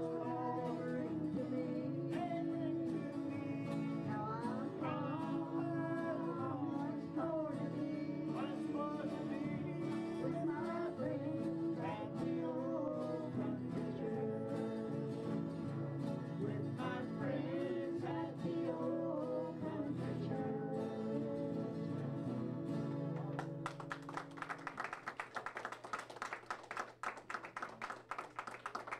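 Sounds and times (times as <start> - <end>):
people singing along: 0.0 - 22.9
acoustic guitars strumming: 0.0 - 24.4.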